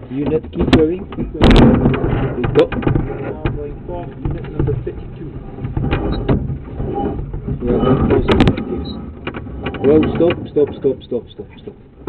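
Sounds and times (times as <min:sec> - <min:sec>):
knocks and clicks: 0:00.0 - 0:12.0
low rumbling: 0:00.0 - 0:12.0.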